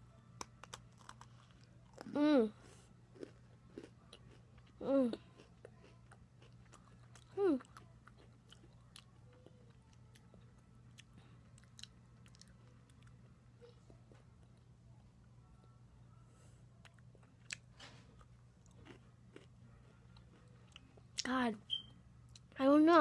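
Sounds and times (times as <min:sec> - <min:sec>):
steady low hum: 0:00.0 - 0:23.0
cookie chewing crunches: 0:00.3 - 0:13.3, 0:16.8 - 0:21.3.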